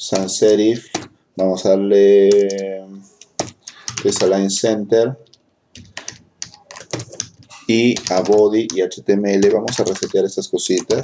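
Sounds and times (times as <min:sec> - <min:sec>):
typing on computer keyboard: 0:00.1 - 0:01.2, 0:02.2 - 0:04.4, 0:05.2 - 0:11.0.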